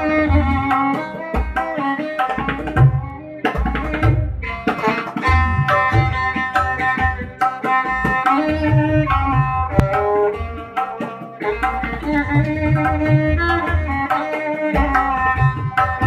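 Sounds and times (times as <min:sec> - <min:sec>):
tabla drum strokes: 0:00.0 - 0:16.0
violin with sliding notes: 0:00.0 - 0:16.0.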